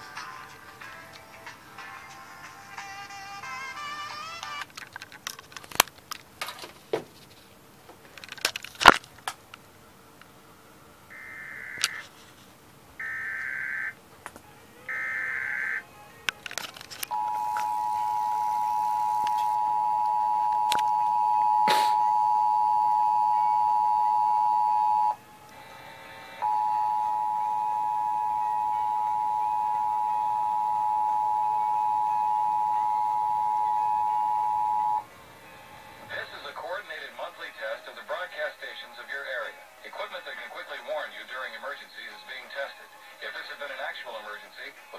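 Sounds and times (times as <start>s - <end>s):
warbling data bursts: 11.1s - 12.0s, 14.9s - 15.8s
voice announcement: 14.4s - 25.8s, 26.4s - 35.1s, 35.8s - 44.9s
two-tone attention signal: 17.1s - 25.2s, 26.4s - 35.1s.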